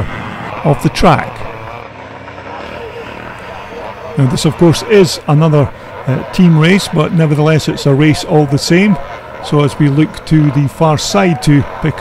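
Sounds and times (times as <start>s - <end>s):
distant motocross engines droning: 0.0s - 12.0s.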